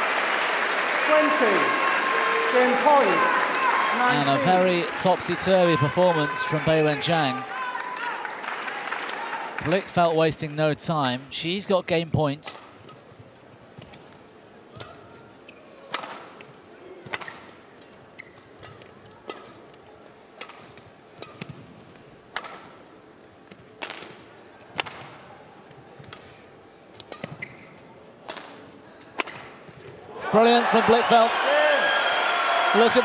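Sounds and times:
rackets striking shuttlecock: 15.9s - 16.4s, 17.0s - 17.5s, 18.6s - 19.6s, 22.3s - 22.8s, 23.5s - 25.2s, 26.0s - 27.5s, 28.2s - 29.9s.

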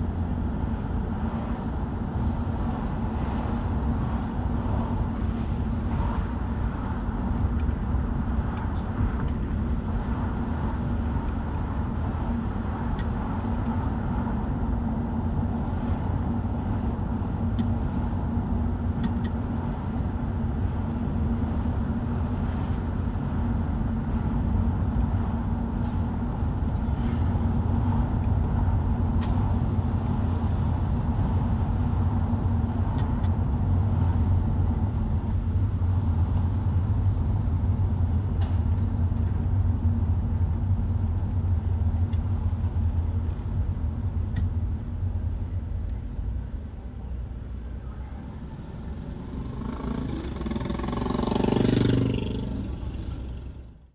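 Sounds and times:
car road noise from inside: 0.0s - 53.9s.

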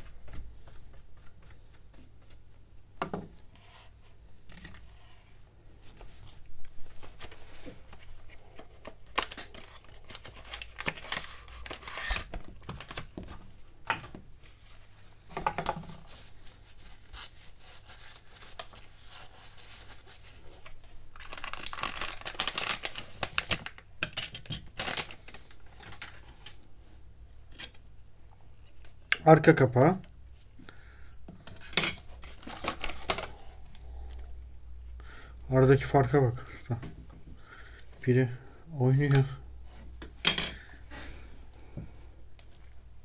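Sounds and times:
plastic and foil crinkling: 6.9s - 13.4s, 16.0s - 26.6s, 31.5s - 33.5s.

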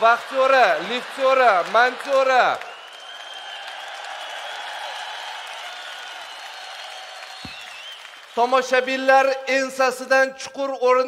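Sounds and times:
audience applauding: 0.0s - 9.1s.

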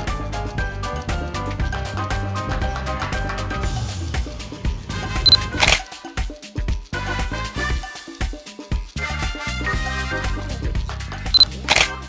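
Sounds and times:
upbeat background music: 0.0s - 12.0s
camera shutter click: 5.3s - 5.8s, 11.4s - 12.0s.

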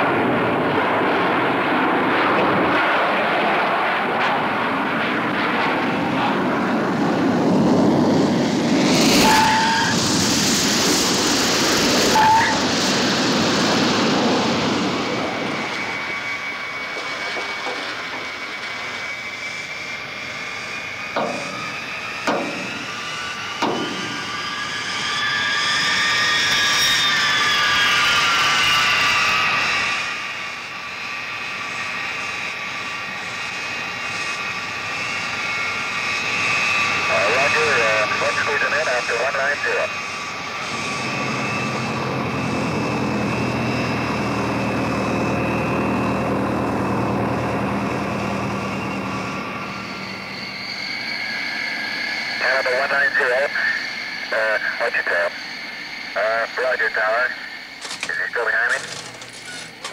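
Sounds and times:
jet engines whining: 0.0s - 59.9s
piston engine drone: 0.0s - 59.9s
high steady whine: 36.8s - 43.9s, 44.7s - 59.9s
sharp clicks: 57.8s - 59.9s.

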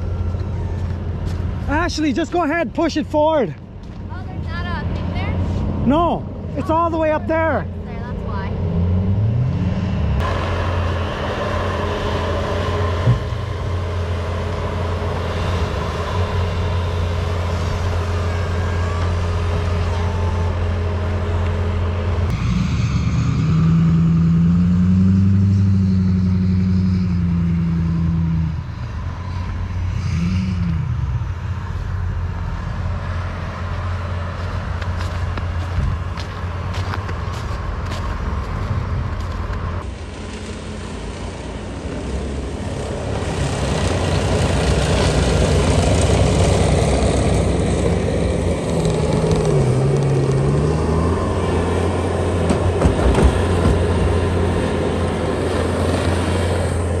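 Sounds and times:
pickup truck engines running: 0.0s - 57.0s
engine revving: 4.2s - 57.0s.

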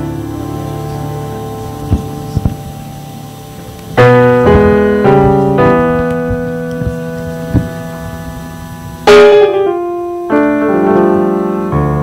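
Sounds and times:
electric piano chord: 0.0s - 12.0s
soft low thump: 4.5s - 8.0s.

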